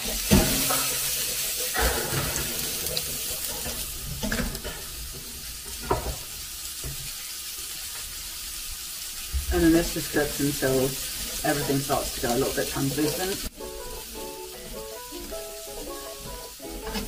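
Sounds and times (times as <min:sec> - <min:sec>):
vegetables sizzling in a frying pan: 0:00.0 - 0:17.0.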